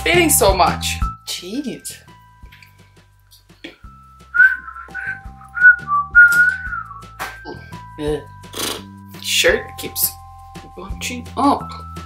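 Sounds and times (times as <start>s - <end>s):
woman whistling a tune: 4.3s - 7.7s.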